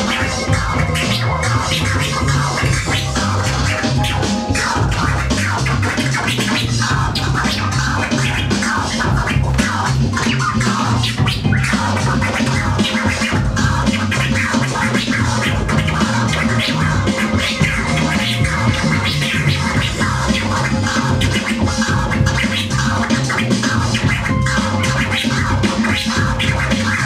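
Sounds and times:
hip hop beat with bassline: 0.0s - 27.0s
turntable scratching: 0.0s - 27.0s.

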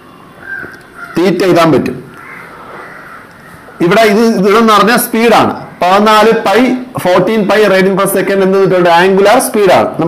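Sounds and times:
crows cawing: 0.1s - 1.4s, 2.0s - 4.4s, 5.4s - 6.5s.

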